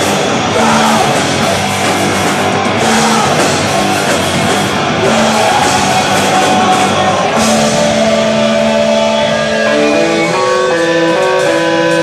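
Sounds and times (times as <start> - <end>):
picked guitar notes: 0.0 - 12.0.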